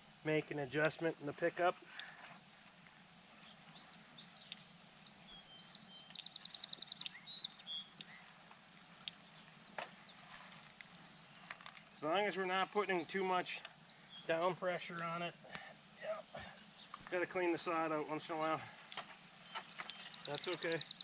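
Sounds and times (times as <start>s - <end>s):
songbird chirping and trilling: 1.7s - 21.0s.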